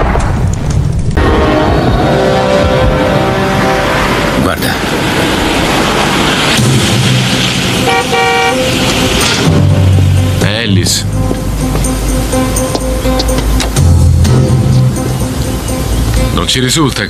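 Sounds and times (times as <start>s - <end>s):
rising whoosh: 0.0s - 10.5s
street traffic: 1.1s - 17.0s
car horn toots: 1.2s - 4.3s, 7.8s - 8.9s.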